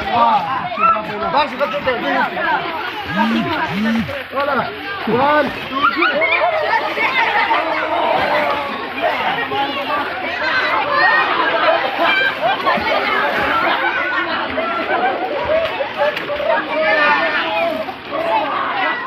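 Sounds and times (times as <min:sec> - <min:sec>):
people talking and calling out: 0:00.0 - 0:19.0.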